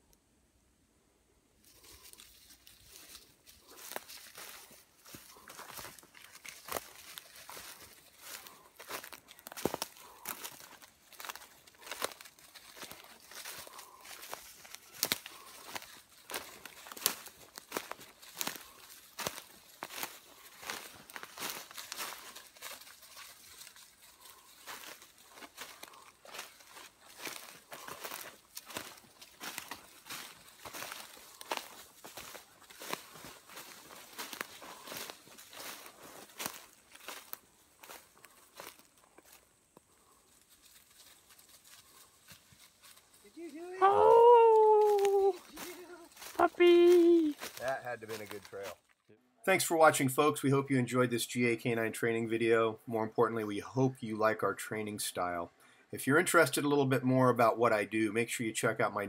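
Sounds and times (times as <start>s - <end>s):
footsteps crunching through dry leaves: 1.6s - 48.9s.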